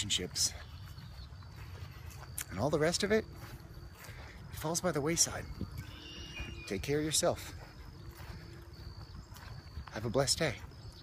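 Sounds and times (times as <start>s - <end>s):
wind rumble on microphone: 0.8s - 11.0s
faint high whine: 1.5s - 11.0s.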